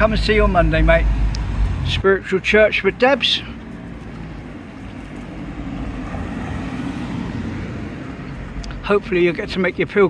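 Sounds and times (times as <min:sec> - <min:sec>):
car driving past: 0:03.8 - 0:08.6.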